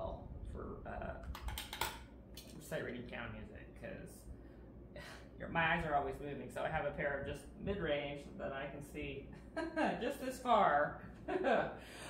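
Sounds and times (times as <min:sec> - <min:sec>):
eyeglasses clicking and tapping: 0:01.3 - 0:02.6.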